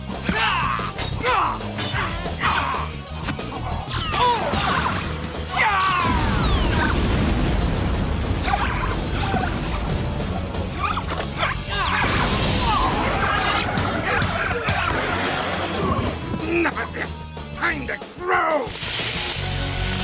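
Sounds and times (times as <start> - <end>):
background music: 0.0 - 20.0
long low explosion: 6.0 - 10.7.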